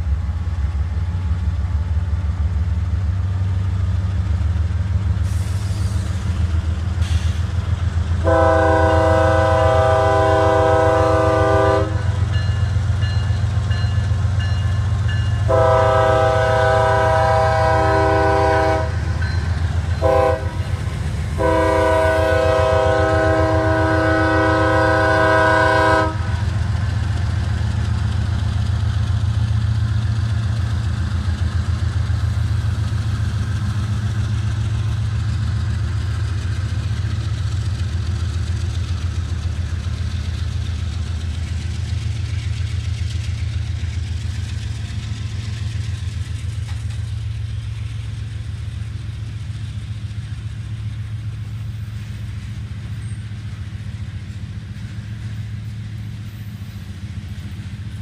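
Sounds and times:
locomotive air horn: 8.2s - 12.2s, 15.5s - 19.2s, 20.0s - 26.5s.

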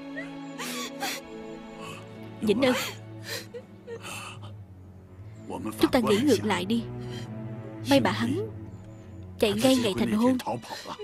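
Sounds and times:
woman sobbing: 0.0s - 4.5s, 9.6s - 11.0s
soft background music: 0.0s - 11.0s.

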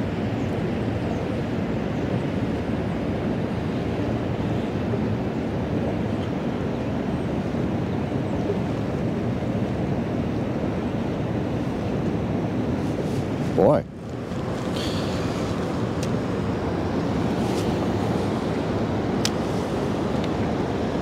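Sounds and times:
water rushing through floodgates: 0.0s - 21.0s
wind on microphone: 0.0s - 21.0s.

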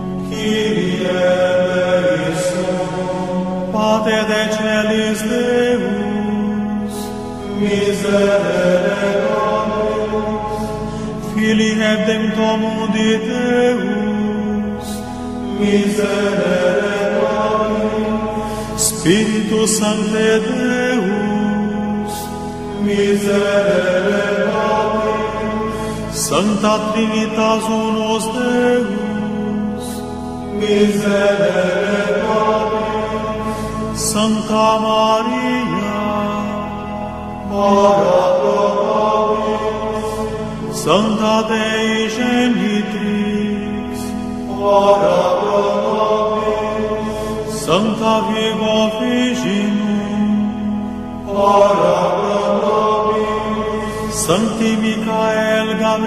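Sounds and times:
chanted prayer singing: 0.0s - 56.0s
steady low drone: 0.0s - 56.0s.

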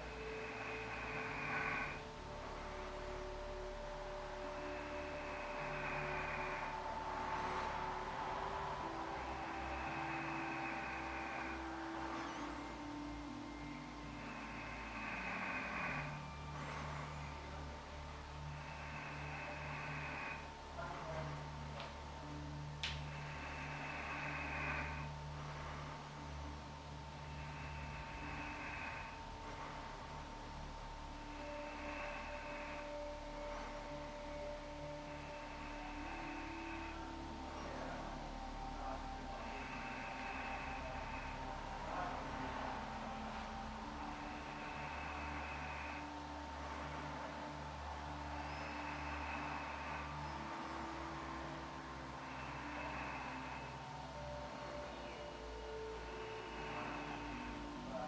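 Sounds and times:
soft slow music over drone: 0.0s - 58.0s.

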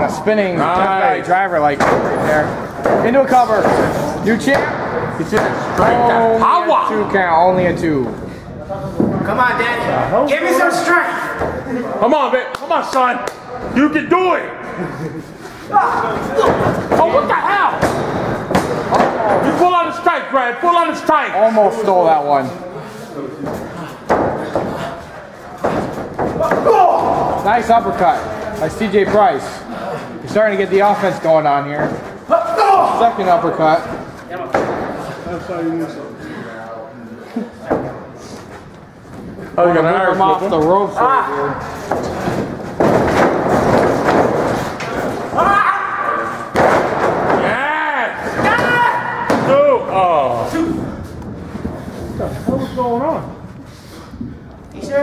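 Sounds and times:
loud thuds of wrestlers' impacts: 16.2s - 19.5s, 41.8s - 45.5s, 46.5s - 49.8s
men shouting: 26.4s - 27.7s, 32.3s - 33.4s, 45.3s - 46.5s, 47.4s - 50.8s.

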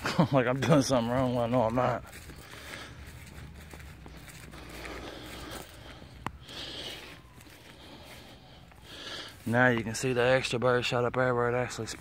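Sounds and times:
footsteps through grass: 0.0s - 12.0s.

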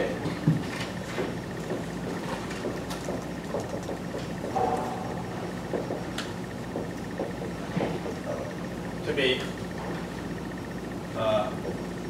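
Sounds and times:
steady room hum: 0.0s - 12.0s.

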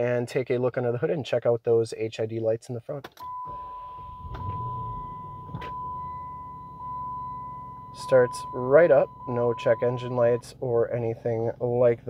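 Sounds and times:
high electronic tone: 3.2s - 10.5s
car engine starting and idling: 3.2s - 11.8s.

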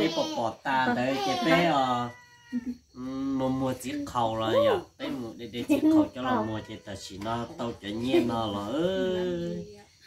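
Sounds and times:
person talking: 0.0s - 1.8s.

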